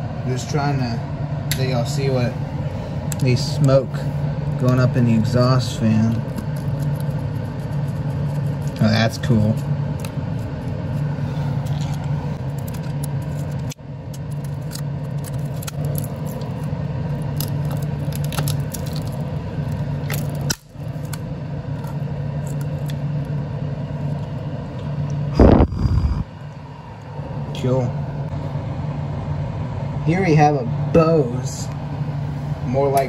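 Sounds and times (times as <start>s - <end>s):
exhaust fan hum: 0.0s - 33.0s.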